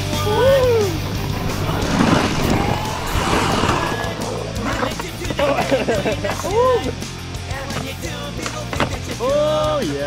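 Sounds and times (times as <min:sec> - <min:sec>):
background music with bass line: 0:00.0 - 0:10.0
skateboard wheels rolling on concrete: 0:00.0 - 0:10.0
skateboard clacks: 0:07.5 - 0:09.7.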